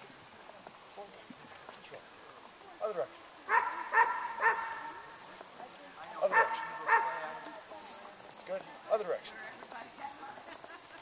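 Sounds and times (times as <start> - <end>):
dog barking: 3.5 - 5.0, 6.2 - 7.4.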